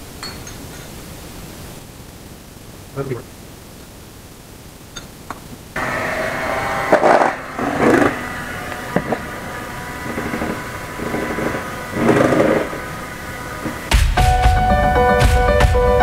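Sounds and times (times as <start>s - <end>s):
electric hand mixer whine: 5.8s - 15.3s.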